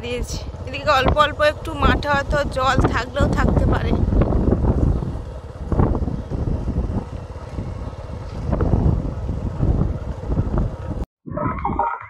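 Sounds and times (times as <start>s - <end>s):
wind buffeting microphone: 0.0s - 11.5s.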